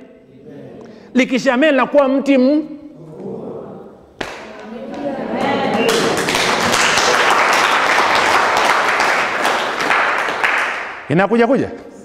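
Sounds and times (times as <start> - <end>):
audience applause: 4.9 - 11.0.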